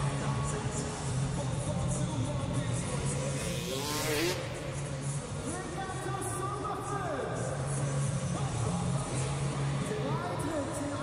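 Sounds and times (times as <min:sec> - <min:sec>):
motorbike engine revving: 0:03.1 - 0:04.8.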